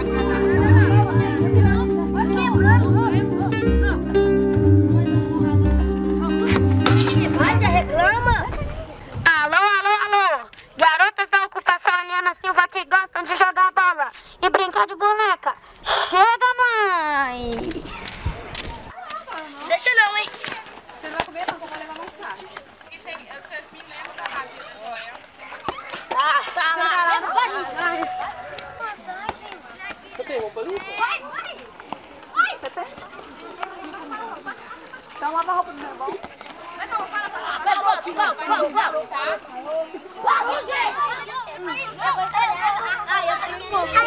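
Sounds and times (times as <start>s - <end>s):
children calling and chattering: 0.0s - 10.8s, 12.2s - 44.0s.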